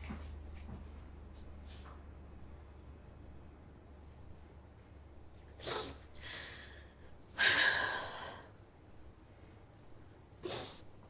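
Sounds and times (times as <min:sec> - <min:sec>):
faint low hum: 0:00.0 - 0:11.0
woman sniffing: 0:05.6 - 0:06.7, 0:10.4 - 0:10.9.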